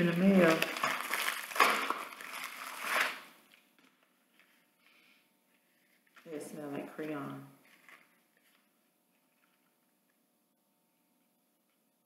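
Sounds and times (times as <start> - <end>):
plastic bag crinkling and tearing: 0.0 - 4.0, 5.9 - 9.9.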